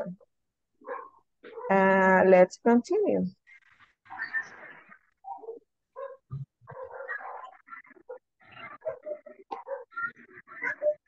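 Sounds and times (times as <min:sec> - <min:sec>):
dog whimpering and yelping: 0:05.2 - 0:11.0.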